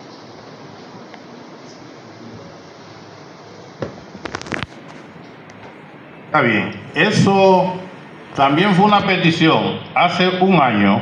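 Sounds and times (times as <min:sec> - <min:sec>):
low room noise: 0:00.0 - 0:11.0
crackling clicks and knocks: 0:04.2 - 0:05.8.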